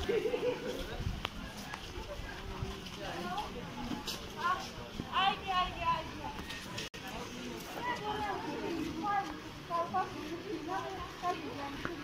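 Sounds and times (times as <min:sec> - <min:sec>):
people talking: 0:00.0 - 0:12.0
street hubbub: 0:00.0 - 0:12.0.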